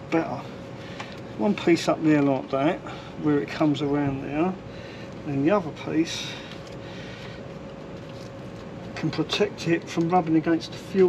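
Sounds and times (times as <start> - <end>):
faint constant hum: 0.0 - 11.0.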